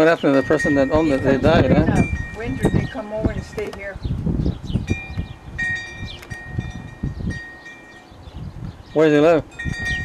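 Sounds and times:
wind chimes ringing: 0.0s - 3.9s, 4.8s - 8.3s, 8.9s - 10.0s.

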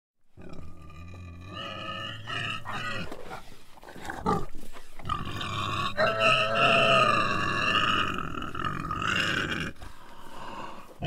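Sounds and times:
pig snorting and squealing: 0.4s - 9.8s.

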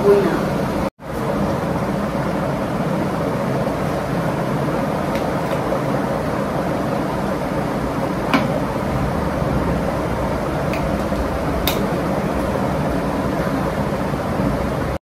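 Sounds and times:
electric fan rushing: 0.0s - 15.0s.

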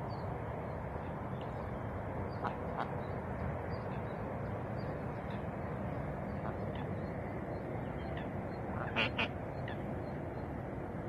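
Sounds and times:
mallard quacks: 8.8s - 9.3s.

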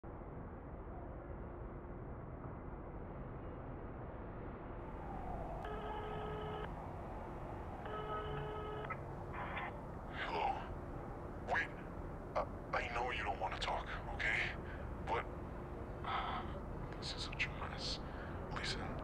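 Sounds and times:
telephone ringing tones: 5.6s - 6.8s, 7.8s - 9.0s.

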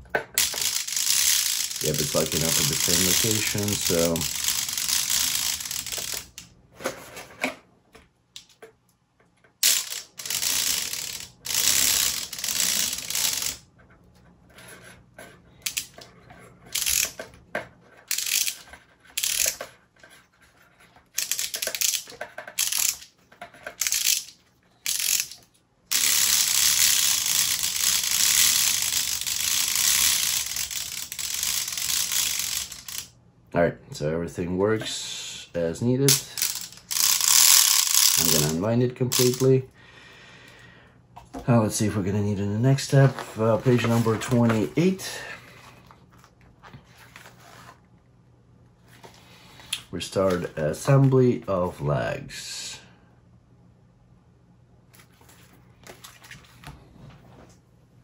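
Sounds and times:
wooden gears clattering: 36.1s - 39.5s.

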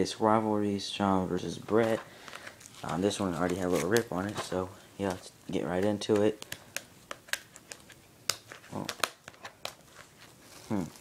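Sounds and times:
plastic shrink wrap crinkling: 1.7s - 11.0s.

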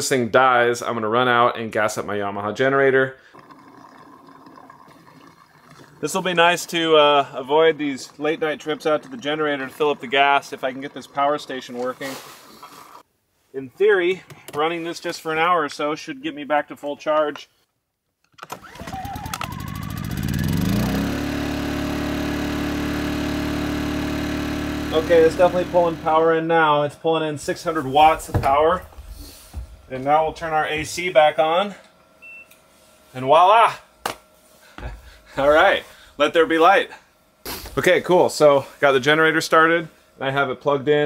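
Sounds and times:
trickle of liquid pouring: 3.2s - 13.0s
generator engine starting and running: 18.4s - 32.5s.

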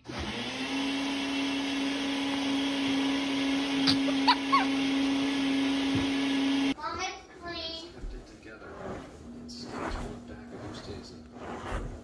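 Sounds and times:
electric motor humming: 0.0s - 6.8s.

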